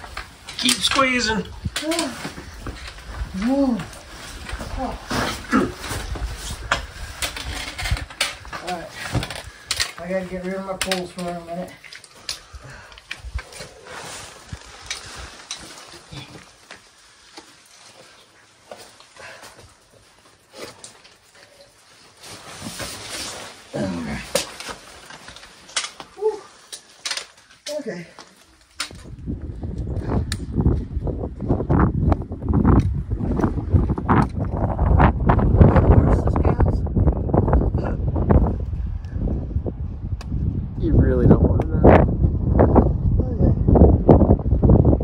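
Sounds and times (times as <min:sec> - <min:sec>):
wind buffeting microphone: 0:00.0 - 0:11.6, 0:28.8 - 0:45.0
backpack rustling: 0:01.8 - 0:29.2.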